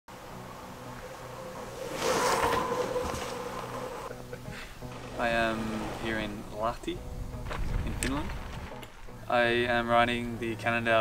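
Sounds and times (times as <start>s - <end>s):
bicycle rolling on gravel: 0.2s - 4.1s, 4.8s - 9.4s.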